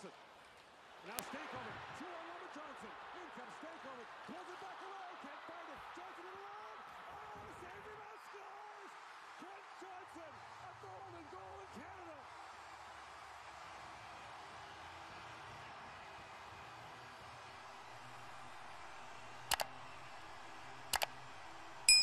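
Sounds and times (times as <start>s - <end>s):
arena crowd cheering: 0.0s - 22.0s.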